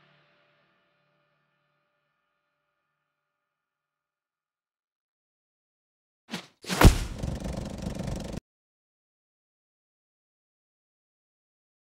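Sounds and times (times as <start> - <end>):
rough rattly low rumble: 6.9 - 8.4.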